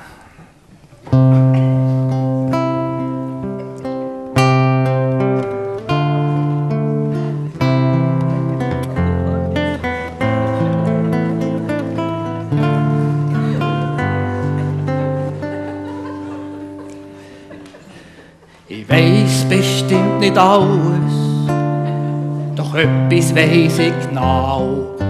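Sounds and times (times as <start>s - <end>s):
fingerpicked acoustic guitar: 0.7s - 25.0s.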